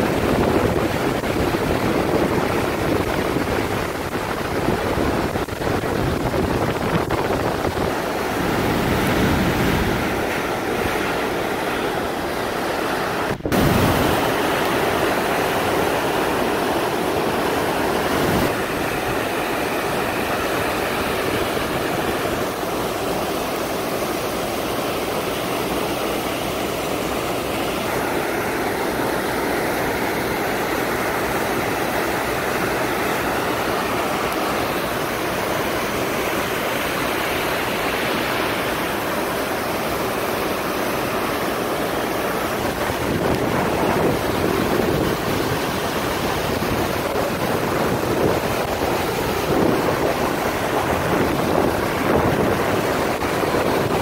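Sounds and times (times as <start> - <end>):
river water rushing through dam gates: 0.0 - 54.0.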